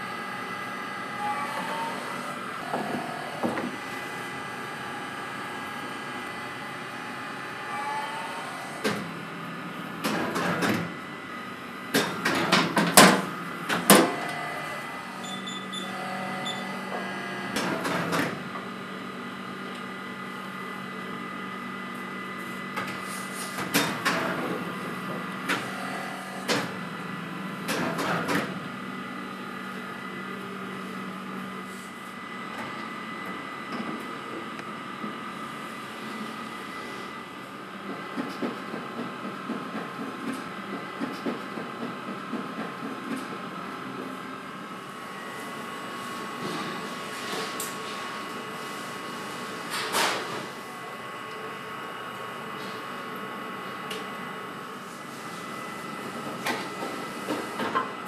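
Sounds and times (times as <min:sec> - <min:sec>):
oven humming: 0:00.0 - 0:38.2, 0:42.6 - 0:58.0.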